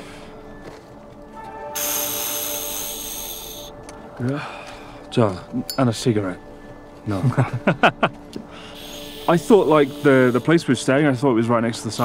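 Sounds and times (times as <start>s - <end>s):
soft background music: 0.0s - 12.0s
oxygen canister hissing: 1.6s - 3.8s, 8.6s - 10.8s
deep breath drawn: 1.7s - 5.1s, 8.5s - 9.3s.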